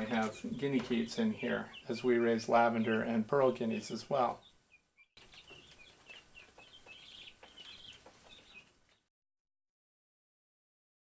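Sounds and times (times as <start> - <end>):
keets peeping: 0.0 - 9.1.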